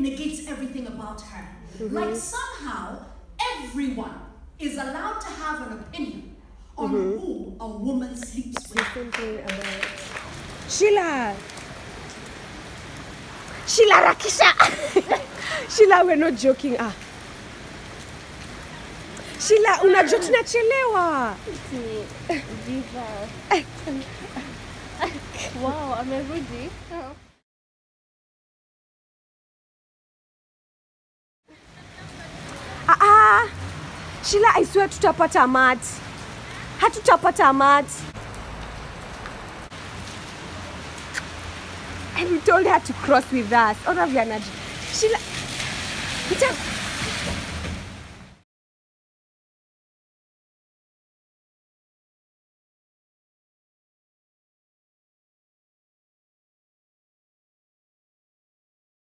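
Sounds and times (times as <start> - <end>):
rain falling on wet street: 0.0 - 3.9, 4.6 - 27.4, 31.5 - 48.4.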